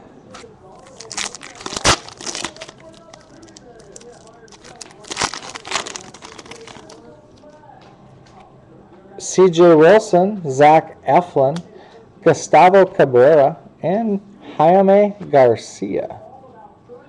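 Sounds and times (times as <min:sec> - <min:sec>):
foil wrapper tearing and crinkling: 0:00.8 - 0:07.0.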